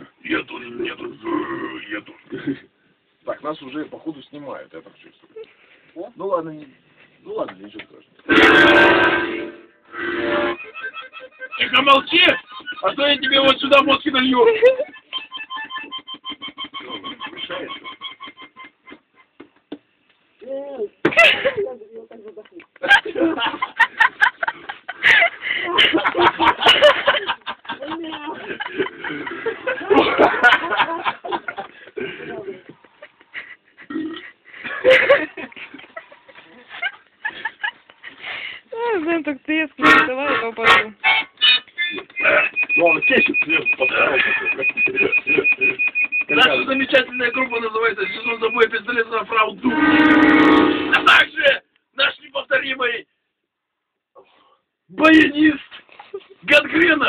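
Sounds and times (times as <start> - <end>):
accordion chords: 8.3 - 18.8, 39.7 - 51.4
indistinct voices talking: 8.3 - 18.8, 38.8 - 51.5.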